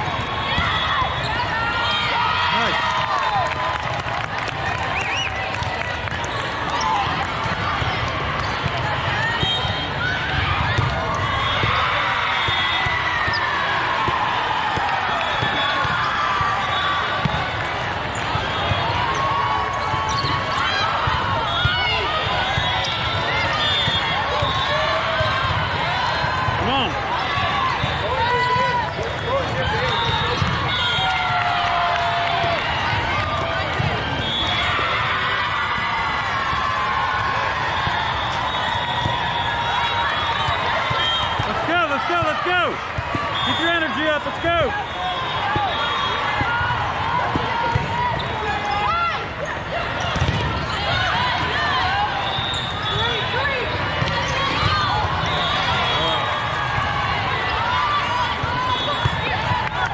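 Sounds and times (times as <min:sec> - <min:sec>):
volleyballs thudding: 0:07.0 - 0:19.2, 0:32.3 - 0:34.3, 0:45.4 - 0:48.4, 0:50.0 - 0:51.6
sneakers squeaking on court: 0:07.8 - 0:09.9, 0:17.2 - 0:24.6, 0:29.8 - 0:30.7, 0:47.3 - 0:50.9
din of many voices: 0:41.4 - 0:59.9.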